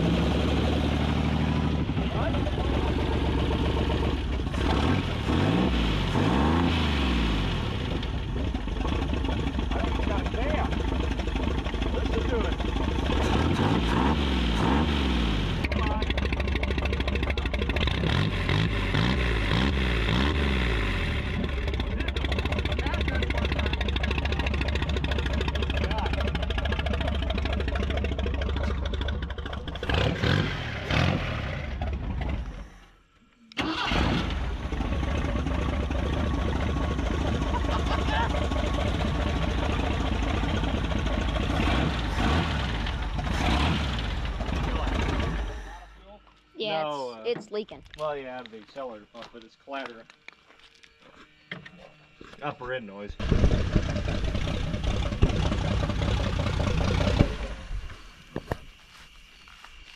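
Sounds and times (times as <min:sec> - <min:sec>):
car engine revving: 0:00.0 - 0:32.9, 0:33.6 - 0:46.0, 0:53.2 - 0:58.6
engine running with clatter: 0:00.0 - 0:32.9, 0:33.7 - 0:46.0, 0:48.8 - 0:59.9.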